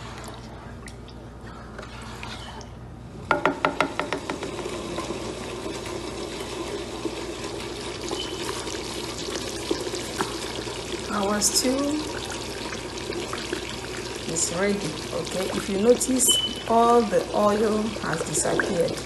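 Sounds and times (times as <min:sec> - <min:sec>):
sharp knocks: 0:03.3 - 0:04.5
stew bubbling: 0:04.3 - 0:19.0.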